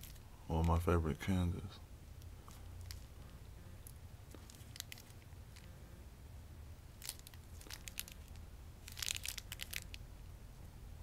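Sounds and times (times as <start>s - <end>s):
candy wrapper crinkling: 0.0s - 0.9s, 2.4s - 5.8s, 6.9s - 10.1s.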